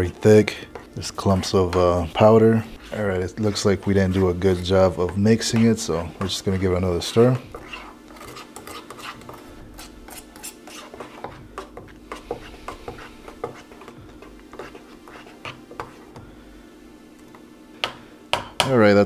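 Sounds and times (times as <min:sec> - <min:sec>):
steady low hum: 0:00.0 - 0:19.0
spoon scraping metal cup: 0:05.5 - 0:13.8.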